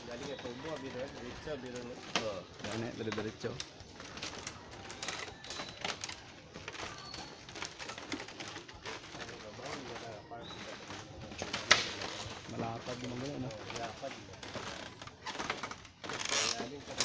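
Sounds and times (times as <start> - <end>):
birds calling: 0.0 - 12.2
footsteps on bamboo boardwalk: 0.0 - 17.0.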